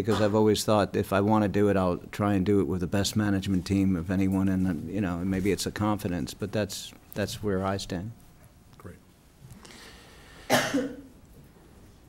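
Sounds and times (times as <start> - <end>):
person coughing: 0.1 - 0.4, 10.4 - 11.1
faint breathy noise: 9.5 - 10.5.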